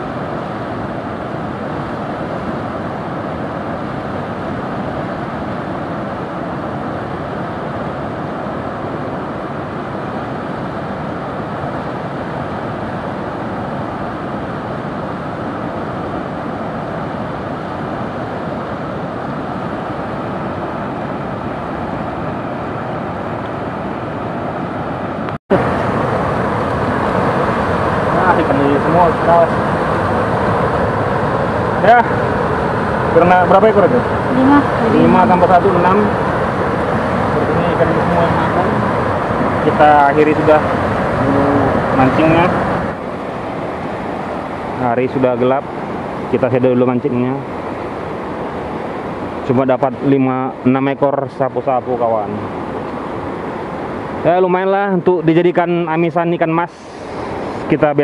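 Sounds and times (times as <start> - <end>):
river water rushing over rapids: 0.0 - 58.0.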